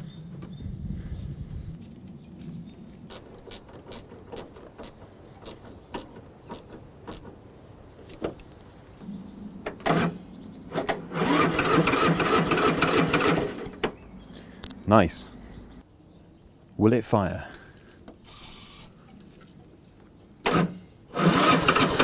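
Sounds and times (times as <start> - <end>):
engine cranking on starter: 9.8 - 14.0, 20.4 - 22.0.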